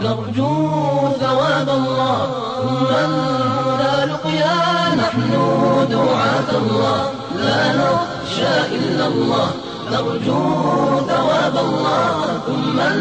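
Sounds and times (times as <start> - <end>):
group of voices chanting: 1.5 - 13.0.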